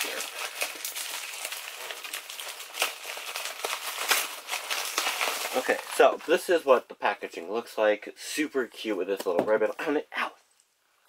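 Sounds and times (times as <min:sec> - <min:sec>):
bubble wrap crinkling: 0:00.0 - 0:06.6.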